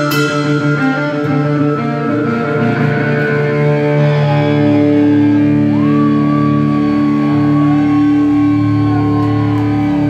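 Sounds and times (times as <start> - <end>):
high guitar note sliding up: 0.0 - 6.4
rock band droning: 0.0 - 10.0.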